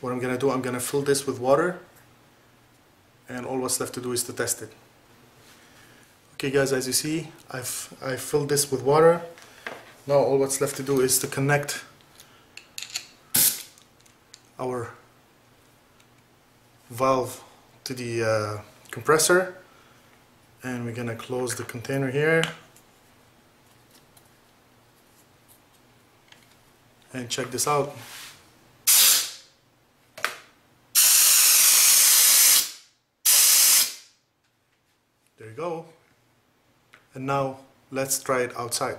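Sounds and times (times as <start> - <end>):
compressed air spray hissing: 13.4 - 13.6, 28.9 - 29.5, 31.0 - 34.1.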